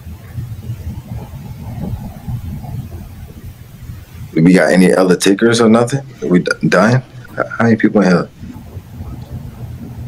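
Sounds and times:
faint muffled sounds: 0:00.0 - 0:10.0
low rumbling road noise: 0:00.0 - 0:10.0.

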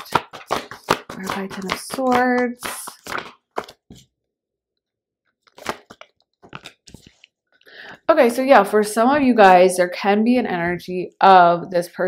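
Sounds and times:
cards snapping and slapping: 0:00.0 - 0:04.0, 0:05.5 - 0:07.2.

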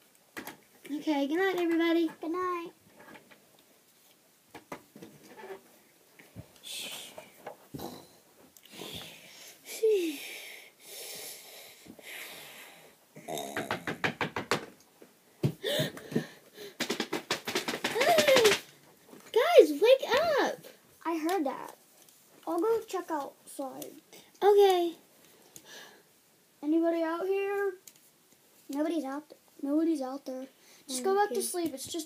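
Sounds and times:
short hiss: 0:06.6 - 0:07.4
light taps of plastic dolls: 0:13.6 - 0:19.4.

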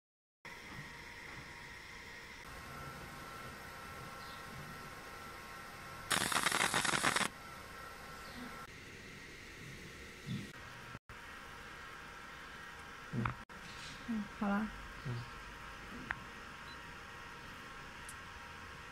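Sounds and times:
machine fan hum: 0:00.5 - 0:18.9
laser machine harsh hiss: 0:06.1 - 0:07.3.

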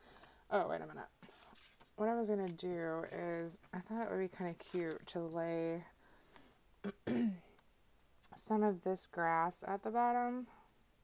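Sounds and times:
woman clearing her throat: 0:06.8 - 0:07.4.

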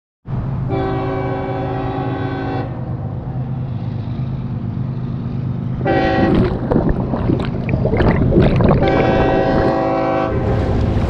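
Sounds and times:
train horn chord: 0:00.7 - 0:02.9, 0:05.8 - 0:06.5, 0:09.0 - 0:10.9
steady low rumble: 0:03.6 - 0:11.0.

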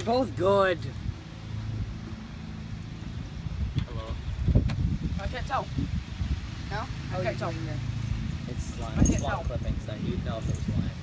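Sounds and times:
low engine hum: 0:00.0 - 0:11.0.

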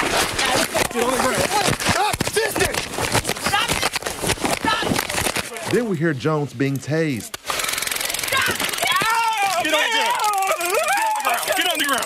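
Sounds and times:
man yelling: 0:08.8 - 0:12.0.

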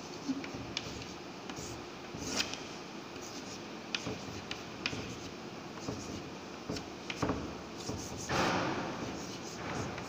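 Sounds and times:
chalk scratching on blackboard: 0:00.0 - 0:02.6, 0:03.2 - 0:10.0
chalk tapping: 0:00.2 - 0:02.6, 0:03.2 - 0:10.0.

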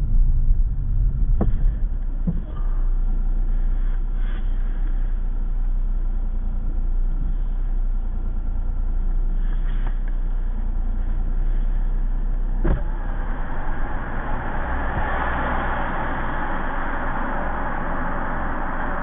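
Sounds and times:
car engine and tyre road noise: 0:00.0 - 0:19.0.

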